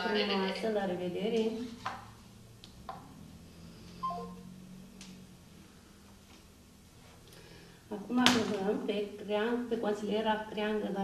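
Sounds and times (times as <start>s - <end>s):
low steady hum: 0.0s - 11.0s
phone three-note tone: 4.0s - 4.5s.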